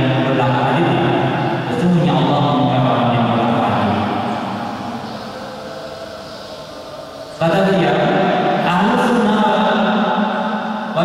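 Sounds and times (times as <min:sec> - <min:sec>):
low room noise: 0:00.0 - 0:11.0
man chanting in reverberant hall: 0:00.0 - 0:11.0.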